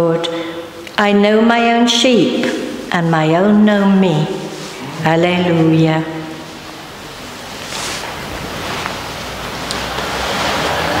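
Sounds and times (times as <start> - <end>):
microphone and room hiss: 0.0 - 11.0.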